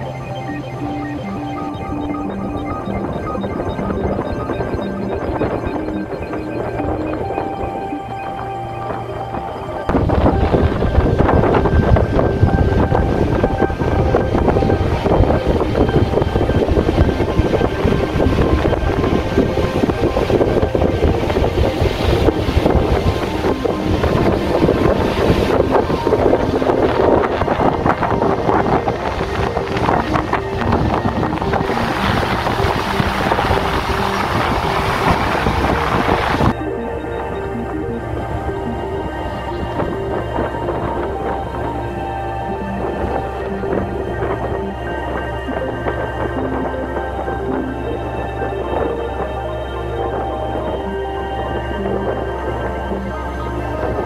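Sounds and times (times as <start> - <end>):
faint music: 0.0 - 54.0
wind buffeting microphone: 0.0 - 54.0.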